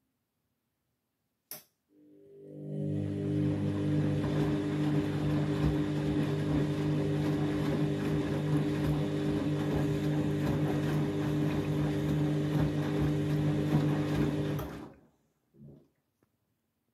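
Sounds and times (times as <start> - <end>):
washing machine motor humming: 2.0 - 15.0.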